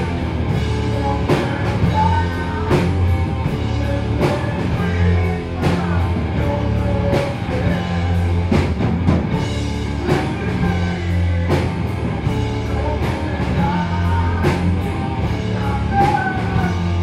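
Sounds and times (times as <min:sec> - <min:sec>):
person singing: 0:00.0 - 0:08.6, 0:09.8 - 0:17.0
bass guitar: 0:00.0 - 0:17.0
drum kit: 0:00.0 - 0:17.0
electric guitar: 0:00.0 - 0:17.0.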